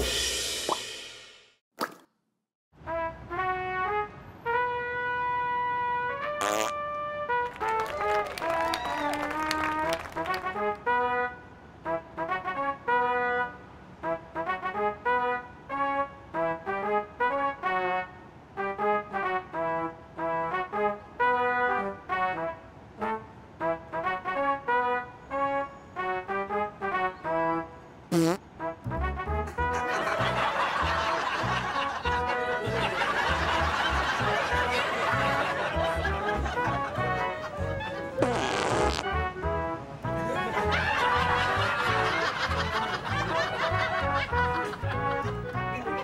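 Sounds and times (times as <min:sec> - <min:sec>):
comic fart sounds tune: 0:06.4 - 0:06.8, 0:28.1 - 0:28.5, 0:38.2 - 0:39.3.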